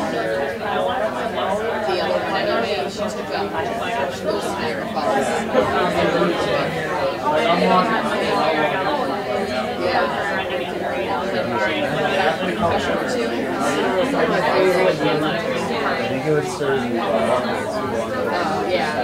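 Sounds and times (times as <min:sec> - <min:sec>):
babble of many voices: 0:00.0 - 0:19.0.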